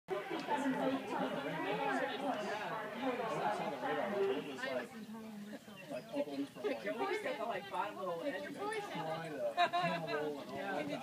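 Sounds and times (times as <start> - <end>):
people chattering: 0.1 - 11.0.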